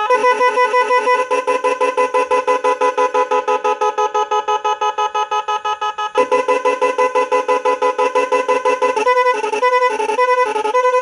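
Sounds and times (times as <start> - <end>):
motorcycle horn fast beeps: 0.1 - 11.0.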